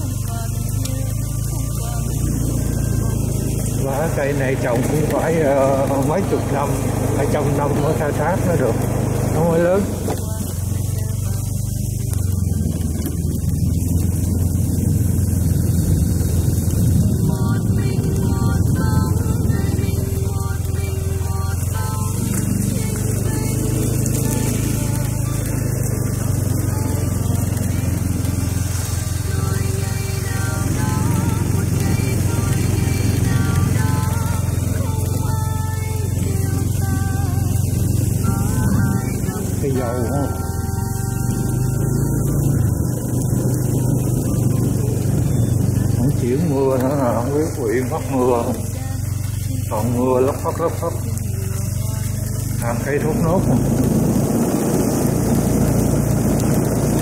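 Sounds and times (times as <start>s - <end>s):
background music: 0.0s - 56.1s
motorbike engine droning: 0.0s - 57.0s
road noise: 0.0s - 57.0s.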